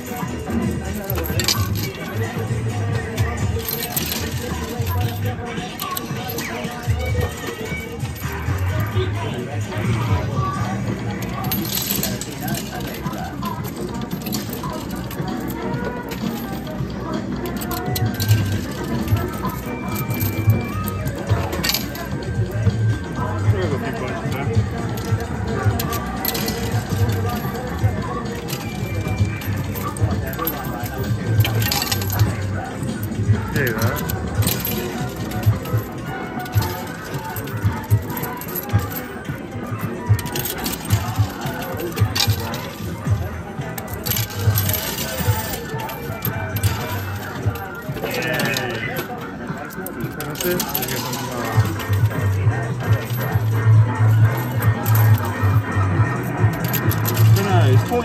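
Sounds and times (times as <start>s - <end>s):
arcade music with steady beat: 0.0s - 58.0s
coins clinking: 0.0s - 58.0s.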